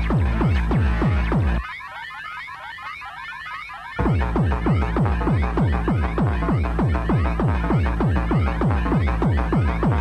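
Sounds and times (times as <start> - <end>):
pounding kick drum: 0.0 - 1.6, 4.0 - 10.0
alarm-like synth sweeps: 0.0 - 10.0
faint low synth bed: 4.0 - 10.0.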